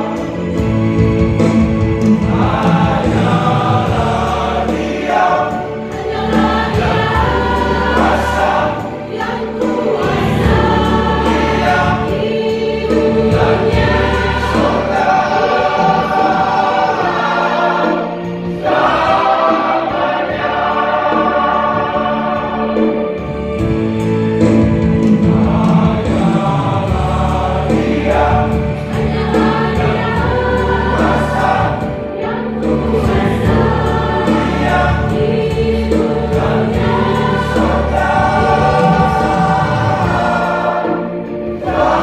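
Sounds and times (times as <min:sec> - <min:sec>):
church choir singing in harmony: 0:00.0 - 0:42.0
low accompaniment: 0:00.0 - 0:42.0.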